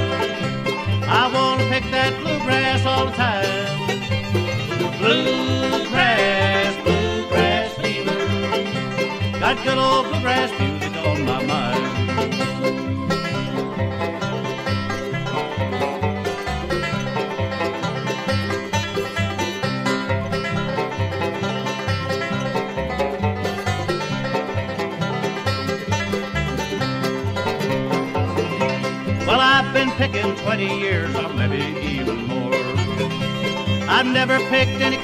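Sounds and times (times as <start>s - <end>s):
bluegrass band playing: 0.0s - 35.0s.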